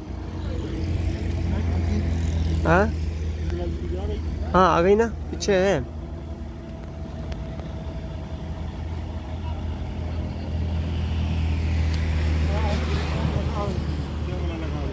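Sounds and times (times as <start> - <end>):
steady low rumble: 0.0 - 12.3
motorcycle passing: 0.0 - 14.9.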